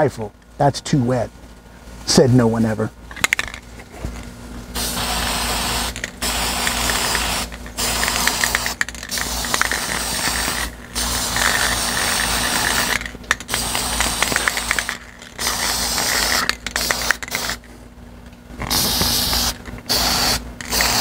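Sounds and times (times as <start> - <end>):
spray paint can hissing: 4.8 - 17.7, 18.6 - 21.0.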